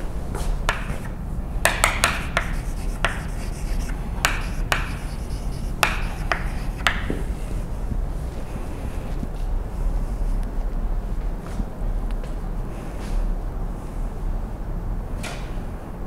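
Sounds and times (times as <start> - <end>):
steady low hum: 0.0 - 16.0
chalk scratching on blackboard: 0.7 - 7.3.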